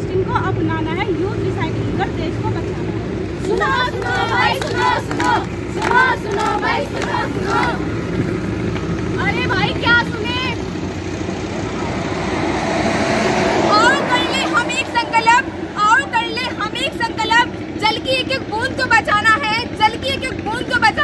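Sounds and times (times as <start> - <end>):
steady low rumble: 0.0 - 21.0
performers chanting and calling out: 3.4 - 8.0.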